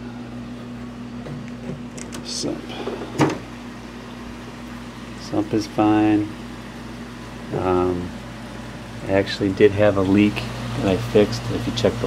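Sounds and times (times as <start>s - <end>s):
aquarium equipment humming: 0.0s - 12.0s.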